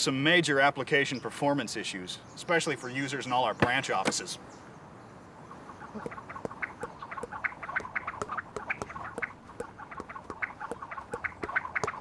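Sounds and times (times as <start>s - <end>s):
ducks quacking: 5.5s - 12.0s.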